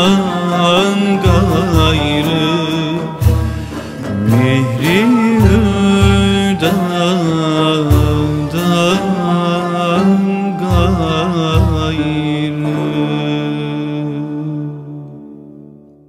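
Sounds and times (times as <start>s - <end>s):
drum strokes: 0.0s - 13.1s
traditional ensemble slow melody: 0.0s - 16.0s.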